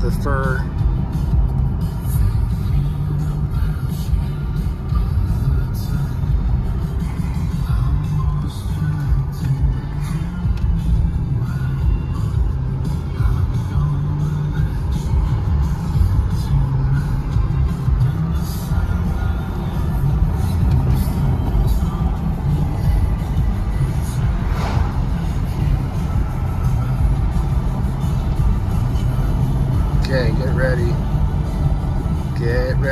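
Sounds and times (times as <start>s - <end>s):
music from car radio: 0.0s - 32.9s
road and engine rumble: 0.0s - 32.9s.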